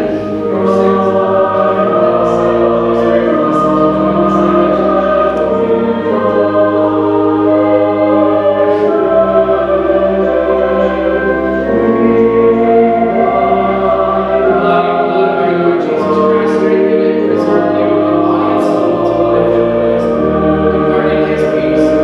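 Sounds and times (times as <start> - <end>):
sustained chord accompaniment: 0.0 - 22.0
voices singing a hymn: 0.0 - 22.0.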